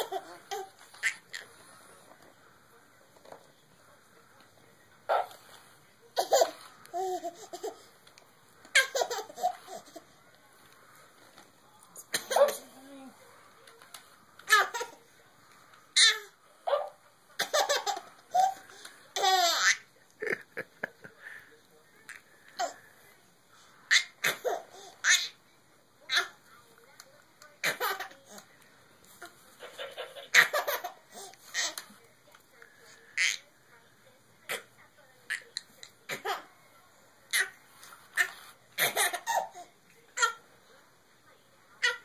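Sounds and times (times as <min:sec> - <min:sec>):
baby laughing: 0:00.0 - 0:01.4, 0:06.2 - 0:07.9, 0:08.7 - 0:10.0, 0:16.0 - 0:18.6, 0:29.6 - 0:31.8
baby laughing breathily: 0:06.2 - 0:07.9, 0:08.7 - 0:10.0.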